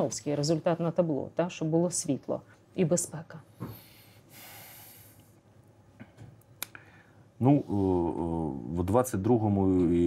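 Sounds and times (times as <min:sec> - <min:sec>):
soft hiss: 0:02.0 - 0:09.3.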